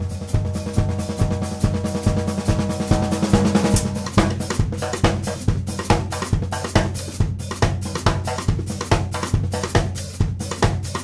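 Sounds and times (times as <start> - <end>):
drum kit groove: 0.0 - 11.0
cymbal hits: 0.6 - 4.4.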